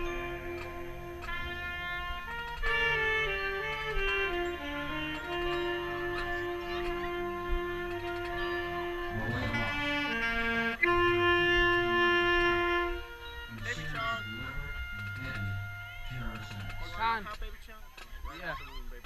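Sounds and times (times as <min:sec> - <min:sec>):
marching band brass chords: 0:00.0 - 0:17.0
voices: 0:00.0 - 0:19.0.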